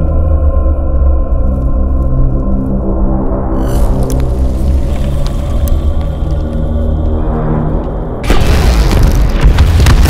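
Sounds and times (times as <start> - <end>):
explosion blast: 8.2 - 10.0
sharp cracks: 8.2 - 10.0.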